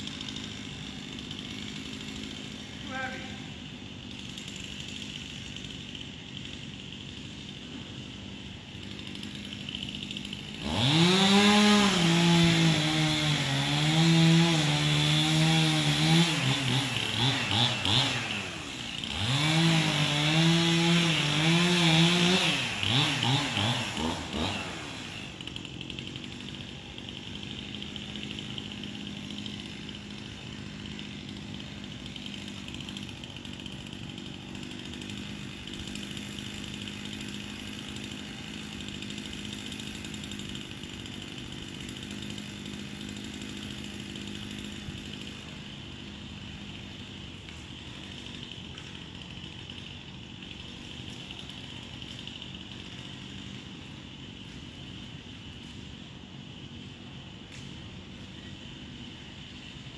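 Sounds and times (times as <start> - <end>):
chainsaw running: 0.0 - 59.9.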